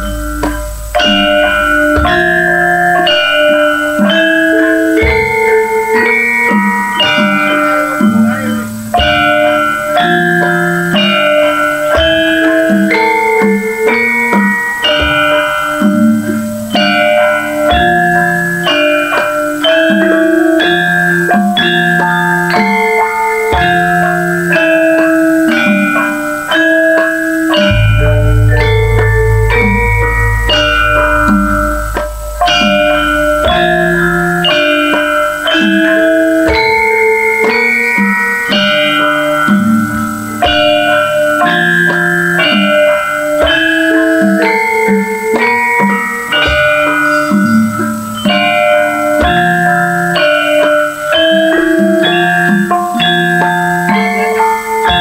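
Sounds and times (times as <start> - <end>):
drums: 0.0 - 55.0
metallophones striking notes: 0.0 - 55.0
deep low held tone: 27.7 - 35.3.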